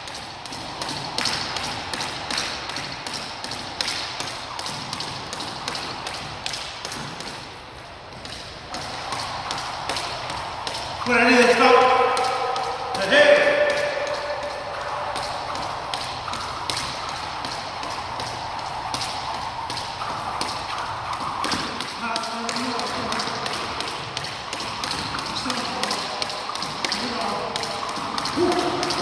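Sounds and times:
jump rope tapping wooden floor: 0.0 - 29.0
person speaking: 11.0 - 15.5.

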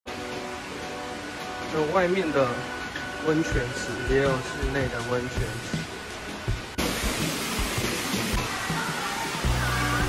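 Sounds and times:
fountains rushing and splashing: 0.1 - 10.0.

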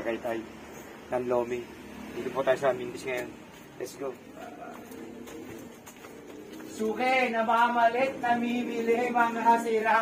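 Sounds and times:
pigeon cooing: 3.8 - 10.0.

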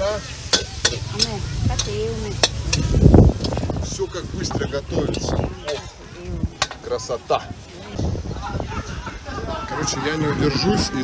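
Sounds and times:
noodles sizzling in a wok: 0.0 - 7.8
metal spatula clanking on wok: 0.4 - 3.7, 6.6 - 6.9.

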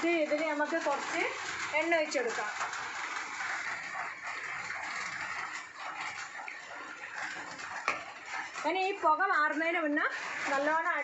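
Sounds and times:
hot charcoal sizzling: 0.0 - 11.0.

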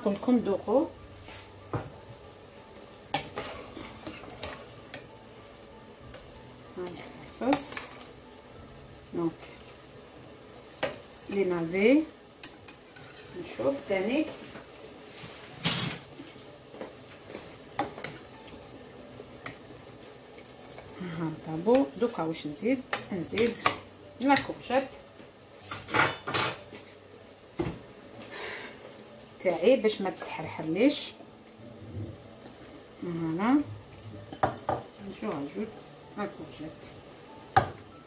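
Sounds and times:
metal utensils stirring in pot: 3.1 - 5.1, 6.1 - 8.2, 12.4 - 16.1.

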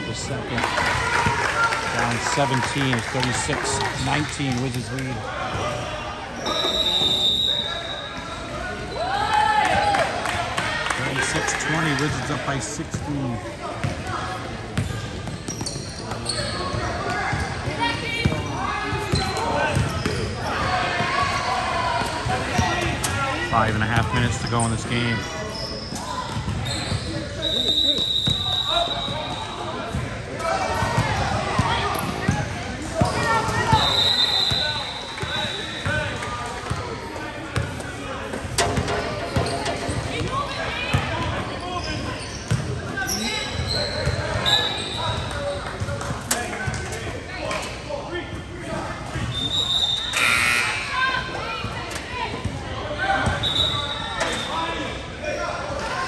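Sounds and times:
voices echoing in a gym: 0.0 - 56.0
basketball bouncing on court: 42.5 - 43.0.

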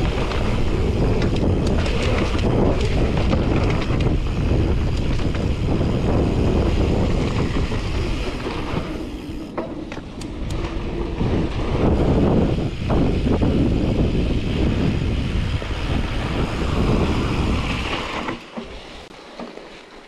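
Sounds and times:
wind buffeting microphone: 0.0 - 18.4
bike rattling: 0.0 - 20.0
tyres rolling on dirt trail: 0.0 - 20.0.

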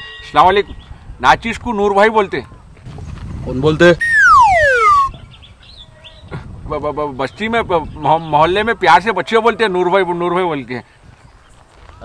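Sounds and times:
descending comedy whistle: 4.0 - 5.2.

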